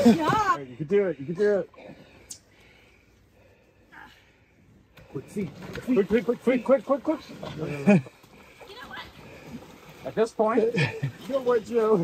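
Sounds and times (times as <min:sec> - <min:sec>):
faint outdoor ambience: 0:00.0 - 0:12.0.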